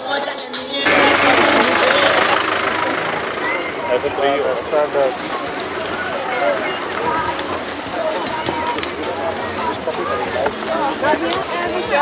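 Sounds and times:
voices: 0.0 - 12.0
engine running noise: 0.8 - 10.8.

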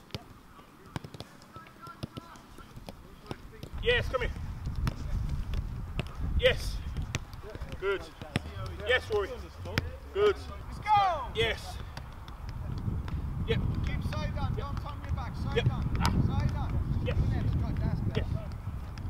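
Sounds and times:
boot kicking football: 0.9 - 19.0
players shouting: 1.5 - 4.5, 6.4 - 12.2.

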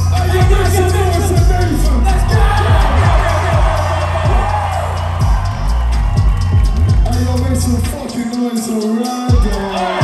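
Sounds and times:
booming kick drums: 0.0 - 7.2
loud hip-hop music: 0.0 - 10.0.

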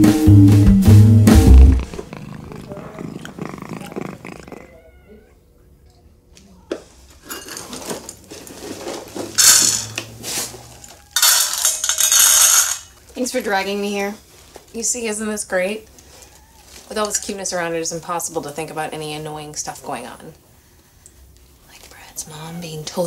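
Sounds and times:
guitar music: 0.0 - 2.0
cat calling: 1.8 - 5.7, 15.9 - 17.7.

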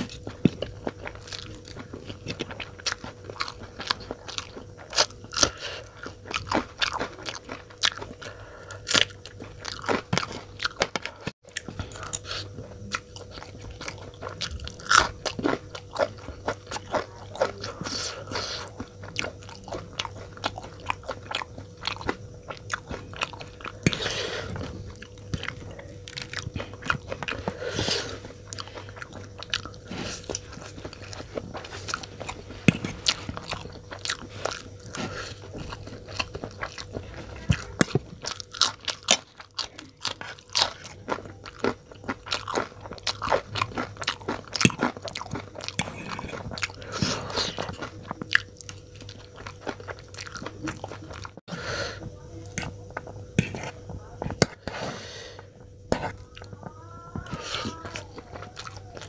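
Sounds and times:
chewing noodles: 0.0 - 51.5, 52.4 - 59.0
faint steady hum: 0.0 - 59.0.

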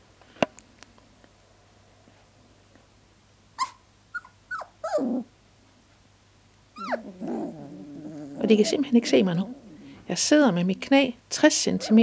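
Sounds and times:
puppies whimpering and whining: 3.6 - 5.3, 6.8 - 10.1.

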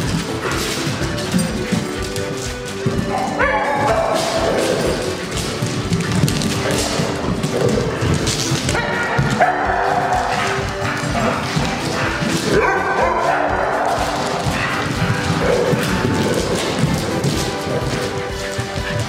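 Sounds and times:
background music: 0.0 - 19.0
dogs barking and yipping: 0.0 - 19.0.

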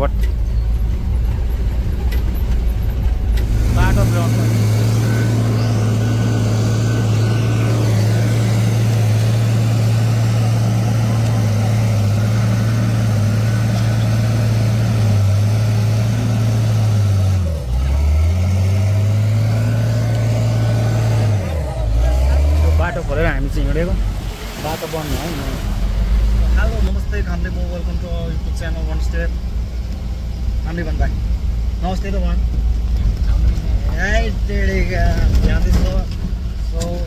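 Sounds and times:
diesel engine running: 0.0 - 37.0.

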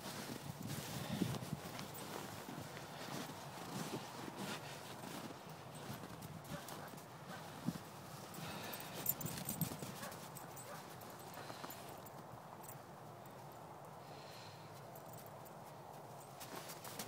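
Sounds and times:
footsteps on snow: 0.0 - 11.9.

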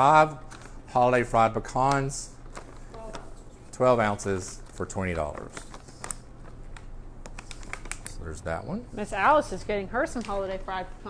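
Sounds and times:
snack bag crinkling: 0.1 - 8.4.

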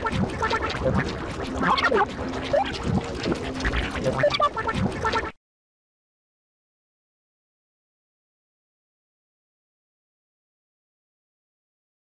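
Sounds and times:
cartoon creature calls and clicks: 0.0 - 5.4.

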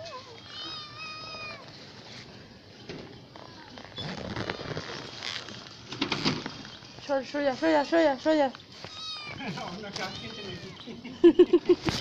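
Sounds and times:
cat meowing: 0.1 - 1.7, 8.8 - 10.9.

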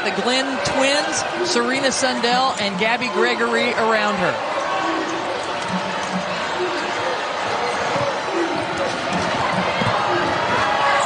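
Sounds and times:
crowd voices hum: 0.0 - 11.0.

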